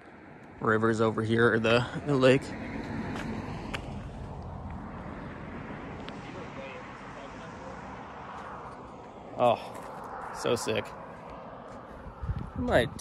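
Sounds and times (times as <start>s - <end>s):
wind: 0.0s - 13.0s.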